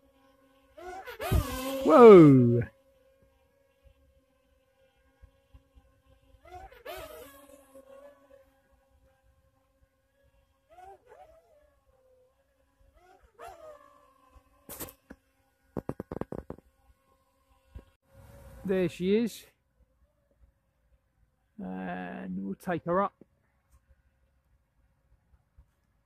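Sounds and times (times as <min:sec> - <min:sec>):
quadcopter motors whining: 0:00.0 - 0:04.2, 0:04.9 - 0:08.6.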